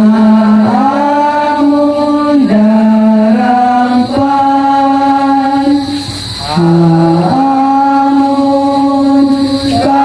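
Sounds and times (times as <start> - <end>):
voices singing a hymn: 0.0 - 10.0.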